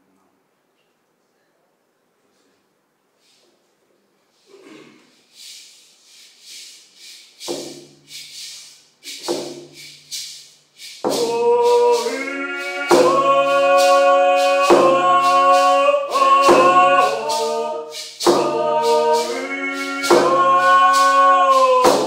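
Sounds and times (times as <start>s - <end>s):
steady rattling beat: 5.4s - 22.0s
two voices singing: 6.4s - 22.0s.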